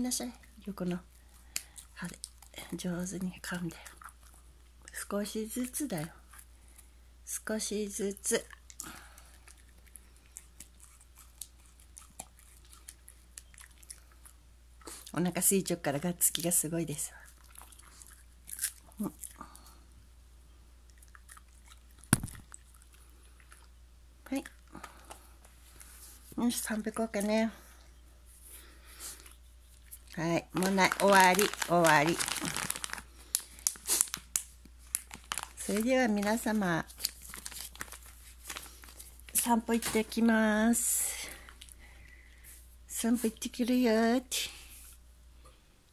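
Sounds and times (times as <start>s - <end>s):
dog chewing treat crunches: 29.8s - 40.0s.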